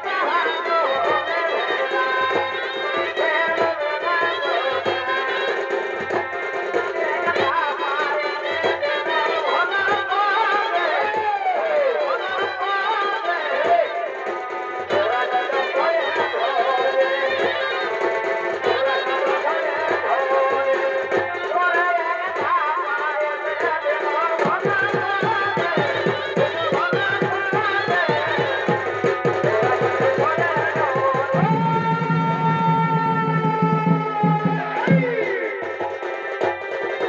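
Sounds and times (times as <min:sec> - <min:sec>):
steady drumbeat: 0:00.0 - 0:37.0.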